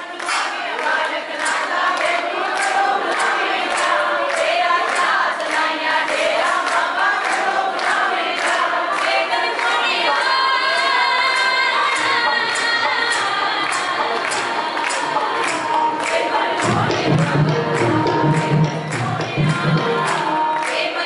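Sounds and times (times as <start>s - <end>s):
group singing devotional song: 0.0s - 21.0s
rhythmic handclapping: 0.0s - 21.0s
musical accompaniment: 12.0s - 21.0s.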